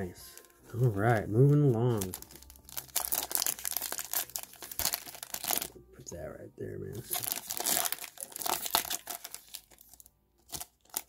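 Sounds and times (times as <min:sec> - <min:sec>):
foil wrapper crinkling: 0:00.0 - 0:05.7, 0:07.0 - 0:11.0.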